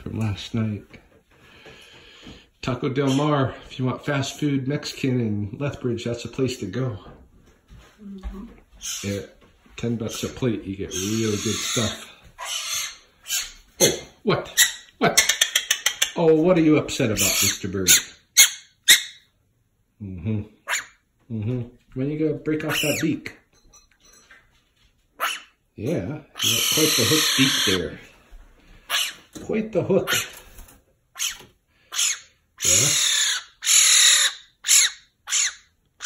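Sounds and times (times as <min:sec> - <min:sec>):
magpie giving harsh calls: 0:10.9 - 0:13.6, 0:25.2 - 0:25.5, 0:26.4 - 0:27.8, 0:28.9 - 0:29.2, 0:31.2 - 0:35.7.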